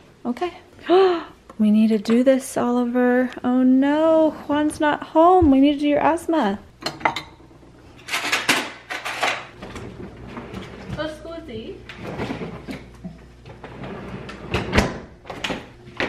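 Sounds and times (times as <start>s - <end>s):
door shutting with thud: 14.5s - 16.0s.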